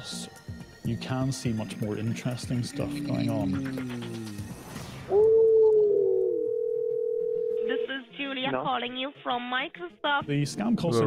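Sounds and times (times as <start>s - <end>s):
voice over phone line: 2.6s - 4.0s
telephone dial tone: 6.4s - 7.8s.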